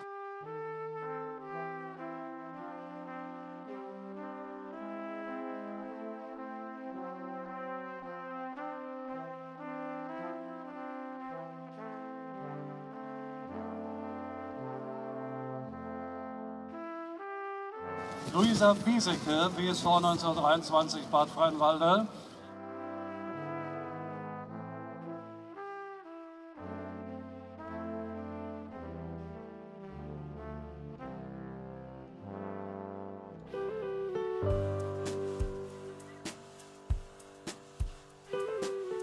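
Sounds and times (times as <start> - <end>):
brass chords: 0.0 - 39.0.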